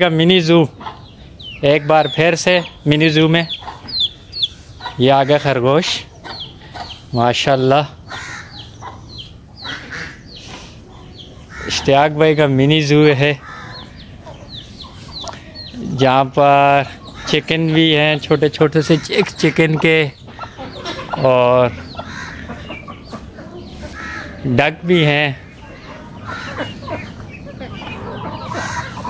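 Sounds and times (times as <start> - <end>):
chicks peeping: 0.0 - 29.0
poultry harsh call: 0.4 - 29.0.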